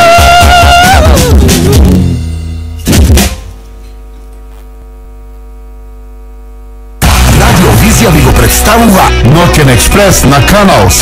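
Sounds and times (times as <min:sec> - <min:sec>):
loud music: 0:00.0 - 0:03.6, 0:07.0 - 0:11.0
electrical mains hum: 0:02.6 - 0:07.0.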